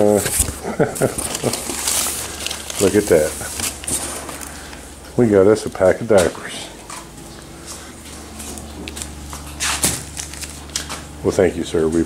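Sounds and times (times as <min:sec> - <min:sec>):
plastic packaging crinkling: 0:00.0 - 0:04.9, 0:08.0 - 0:11.2
steady low hum: 0:00.0 - 0:12.0.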